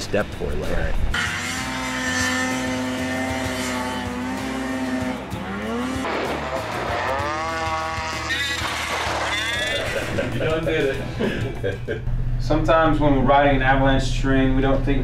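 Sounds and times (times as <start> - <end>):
snowmobile engine revving: 1.1 - 10.0.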